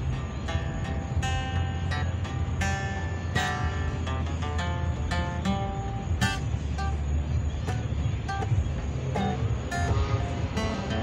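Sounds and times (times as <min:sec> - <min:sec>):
acoustic guitar single notes: 0:00.0 - 0:11.0
low rumble of road traffic: 0:00.0 - 0:11.0.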